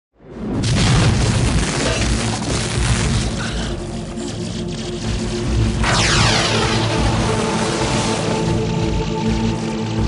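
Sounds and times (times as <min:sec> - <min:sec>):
lightning boom: 0:05.8 - 0:08.6.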